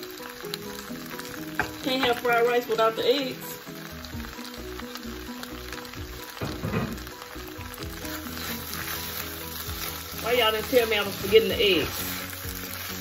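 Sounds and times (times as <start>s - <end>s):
background music: 0.0s - 13.0s
rice sizzling in a pan: 0.0s - 13.0s
spatula stirring: 7.6s - 13.0s.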